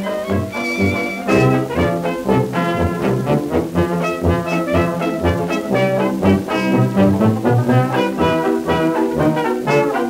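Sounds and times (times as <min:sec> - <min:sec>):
dance band on old record: 0:00.0 - 0:10.0.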